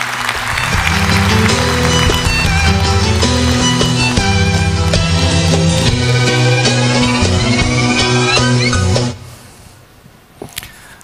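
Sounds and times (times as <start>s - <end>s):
music: 0.1s - 9.3s.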